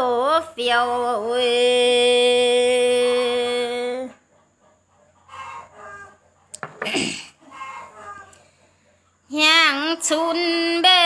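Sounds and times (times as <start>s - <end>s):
woman singing a long note: 0.0s - 4.1s.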